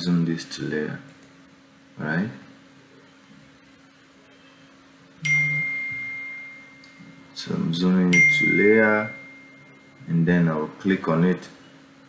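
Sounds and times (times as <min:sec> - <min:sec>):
electronic chime: 0:05.2 - 0:10.1.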